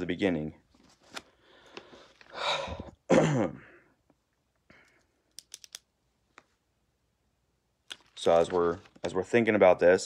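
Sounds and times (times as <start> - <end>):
man clearing his throat: 2.8 - 3.8.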